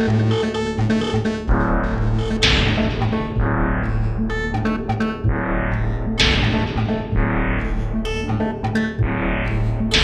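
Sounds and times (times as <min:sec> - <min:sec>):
tech house music: 0:00.0 - 0:10.0.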